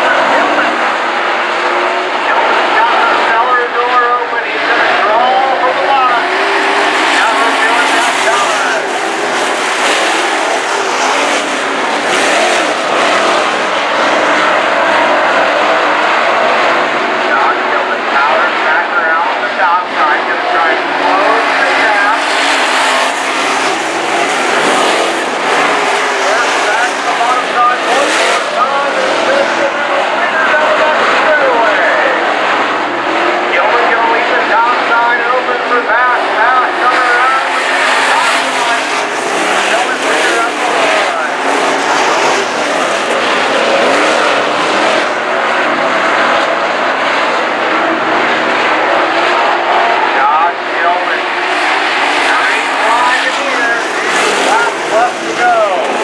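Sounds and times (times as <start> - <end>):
race car engines: 0.0 - 56.0.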